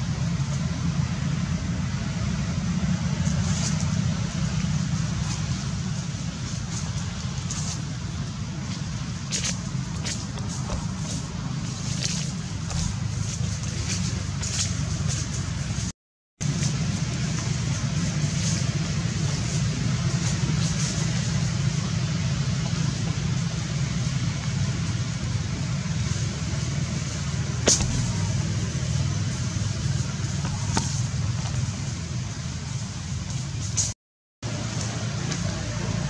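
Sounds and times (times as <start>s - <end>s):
low rumble with hiss: 0.0s - 36.0s.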